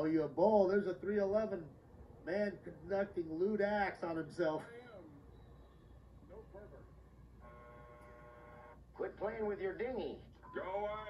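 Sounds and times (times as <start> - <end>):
faint electronic tone: 7.4 - 8.8.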